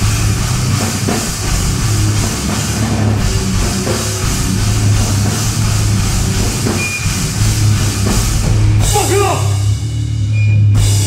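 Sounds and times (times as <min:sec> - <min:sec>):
bass guitar: 0:00.0 - 0:11.0
drum kit with cymbals: 0:00.0 - 0:11.0
electric guitars: 0:00.0 - 0:11.0.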